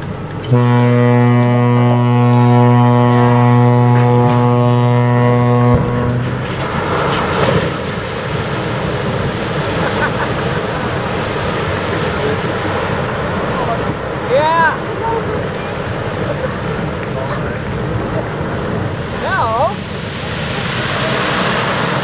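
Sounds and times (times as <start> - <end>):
ship's horn blast: 0.3 - 7.8
rushing splash of water: 5.4 - 22.0.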